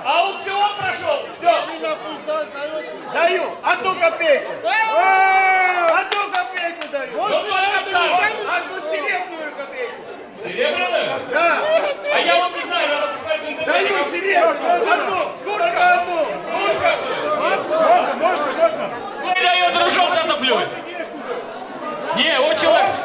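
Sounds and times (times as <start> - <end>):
man speaking into a microphone: 0.0 - 4.6, 5.9 - 21.3, 22.0 - 23.0
men talking: 0.0 - 23.0.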